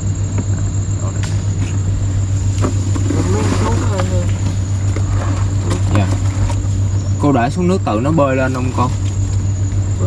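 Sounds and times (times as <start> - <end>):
boat engine running: 0.0 - 10.0.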